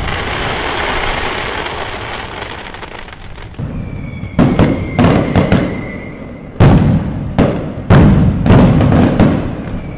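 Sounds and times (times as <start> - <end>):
fireworks bangs with rumbling tail: 0.0 - 9.9
thin steady whistle: 3.6 - 6.6, 9.6 - 9.9.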